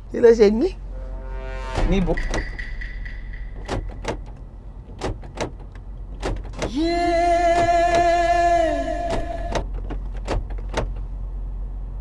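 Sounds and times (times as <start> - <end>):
car cabin hum: 3.4 - 12.0.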